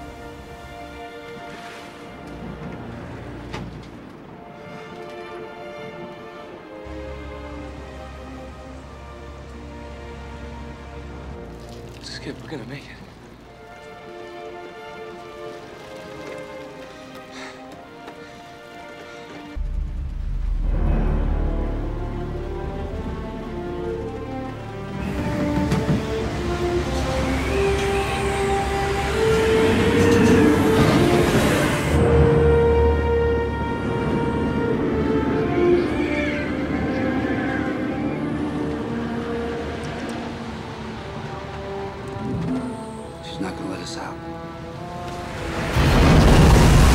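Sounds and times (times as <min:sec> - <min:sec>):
low rumble of storm and boat: 0:00.0 - 0:46.9
orchestral music with tense chords: 0:00.0 - 0:46.9
deep rumble: 0:19.6 - 0:41.4.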